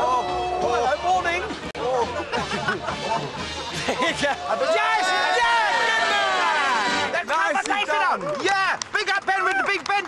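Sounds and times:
person cheering shout: 4.6s - 6.9s.

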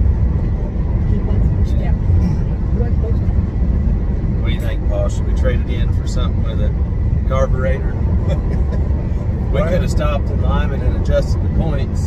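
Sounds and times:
road and tyre rumble in car: 0.0s - 12.0s.

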